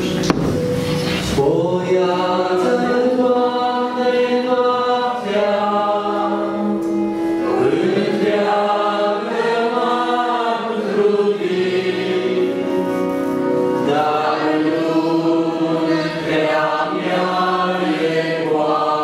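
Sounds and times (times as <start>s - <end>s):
acoustic guitar: 0.0s - 19.0s
electric keyboard: 0.0s - 19.0s
group singing a hymn: 1.1s - 19.0s.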